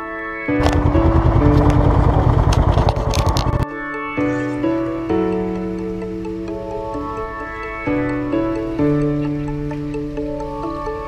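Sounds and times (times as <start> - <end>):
motorcycle engine idling: 0.6 - 3.6.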